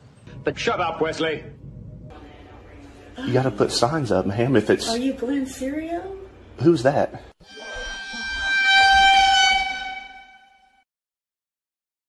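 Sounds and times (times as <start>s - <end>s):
sustained horn-like tone: 7.4s - 10.8s.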